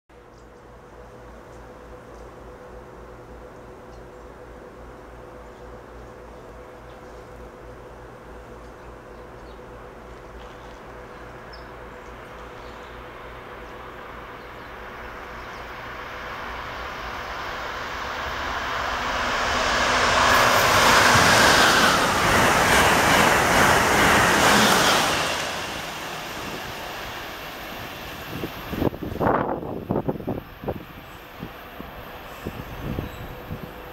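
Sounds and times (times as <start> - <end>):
high-speed train passing: 0.2 - 33.9.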